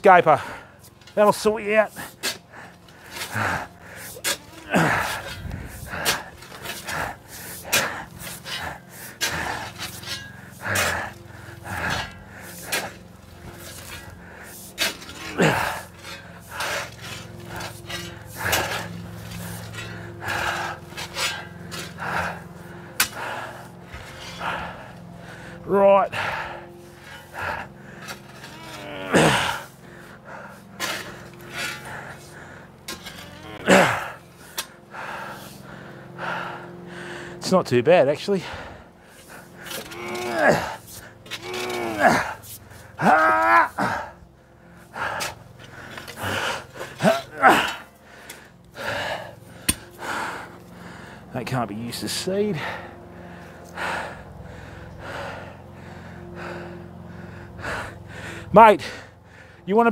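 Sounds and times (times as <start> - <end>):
shovel scraping soil: 3.0 - 22.0.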